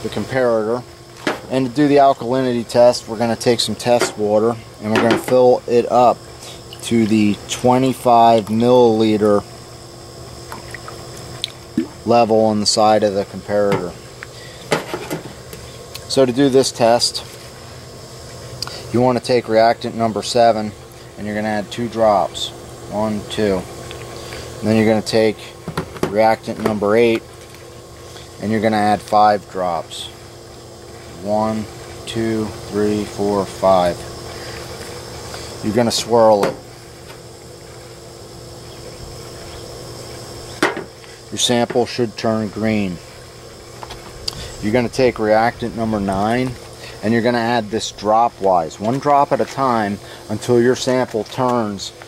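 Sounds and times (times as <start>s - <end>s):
constant low hum: 0.0s - 52.0s.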